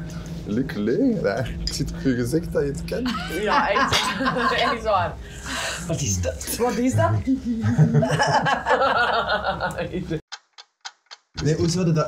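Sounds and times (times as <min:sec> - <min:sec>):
group talking and laughing: 0:03.0 - 0:10.2.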